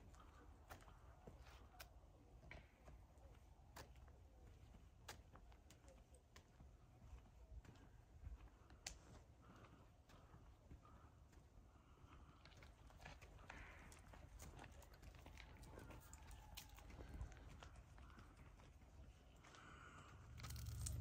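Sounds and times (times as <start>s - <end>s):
low rumble: 20.1s - 21.0s.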